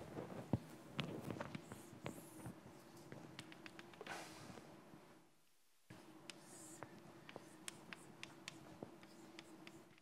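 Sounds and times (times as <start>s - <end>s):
chalk tapping on blackboard: 6.2s - 10.0s.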